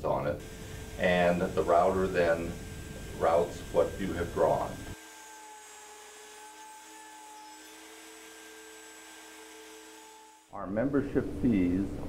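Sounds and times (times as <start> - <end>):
router spindle whine: 0.4 - 10.5.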